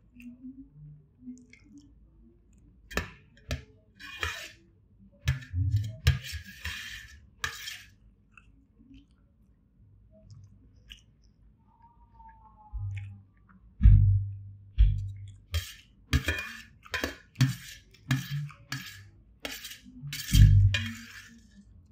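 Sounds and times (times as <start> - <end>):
fingers scraping rice on metal plate: 2.9 - 4.6, 5.3 - 8.0, 15.5 - 21.6
chewing: 8.2 - 11.5, 12.2 - 13.6.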